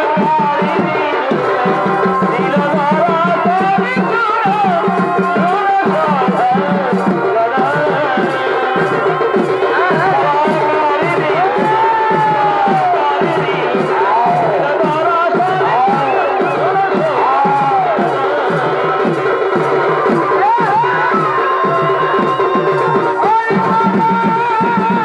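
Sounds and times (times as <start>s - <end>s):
crowd cheering: 0.0s - 25.0s
steady drum beats: 0.0s - 25.0s.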